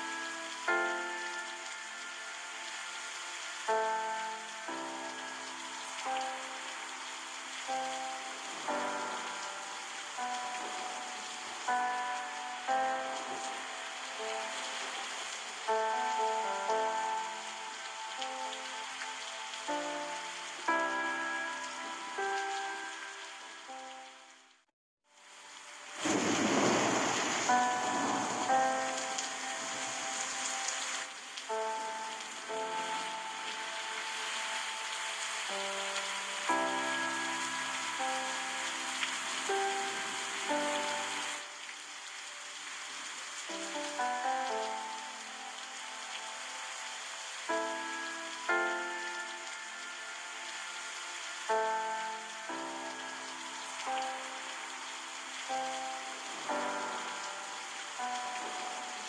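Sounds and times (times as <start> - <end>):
gentle instrumental melody: 0.0 - 24.6, 25.2 - 59.0
flowing river water: 0.0 - 59.0.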